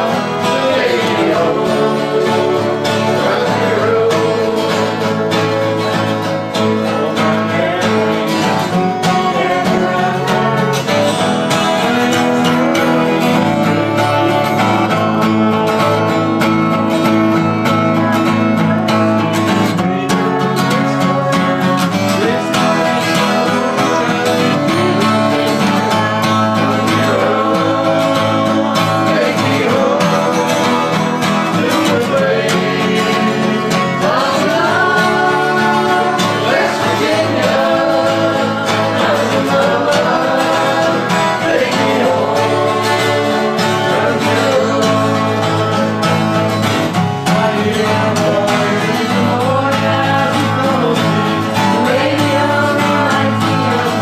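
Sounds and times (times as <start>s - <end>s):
acoustic guitars strumming: 0.0s - 54.0s
voices singing along: 0.0s - 54.0s.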